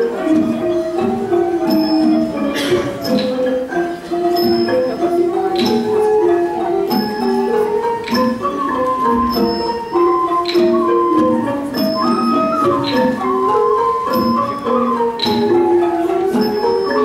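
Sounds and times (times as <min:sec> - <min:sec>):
small cymbals striking: 0:00.0 - 0:17.0
xylophones playing busy melody: 0:00.0 - 0:17.0.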